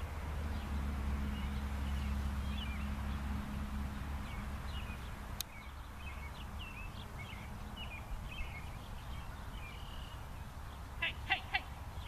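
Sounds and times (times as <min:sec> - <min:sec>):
faint birdsong: 0:00.0 - 0:12.0.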